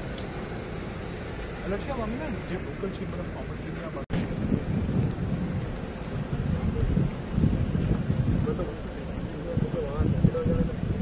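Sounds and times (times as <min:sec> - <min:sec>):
wind buffeting microphone: 0:04.1 - 0:11.0.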